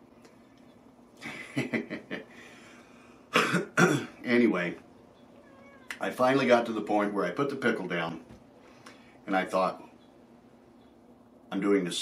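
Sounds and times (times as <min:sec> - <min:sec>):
man laughing: 0:01.2 - 0:02.4
man coughing: 0:03.3 - 0:04.2.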